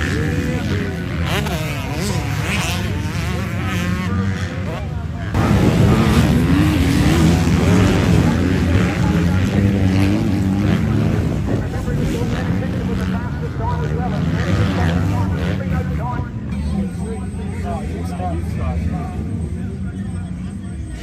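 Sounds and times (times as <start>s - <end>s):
motocross bike engines revving: 0.0s - 21.0s.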